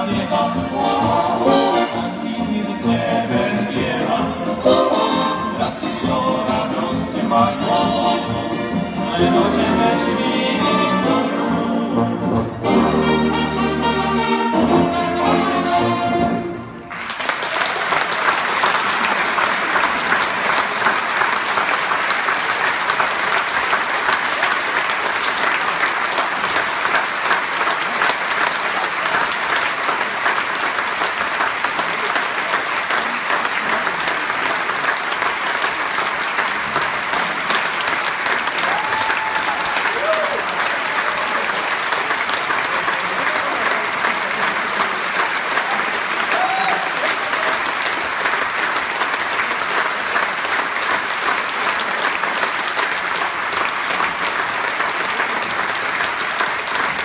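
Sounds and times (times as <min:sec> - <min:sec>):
audience applauding: 0:16.8 - 0:57.0
calls from crowd: 0:16.9 - 0:57.0.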